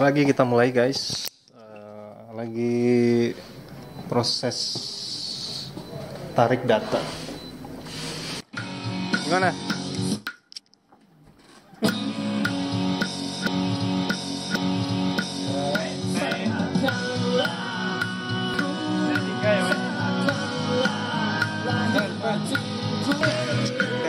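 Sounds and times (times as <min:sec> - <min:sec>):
guitar-led band song: 0:11.9 - 0:24.0.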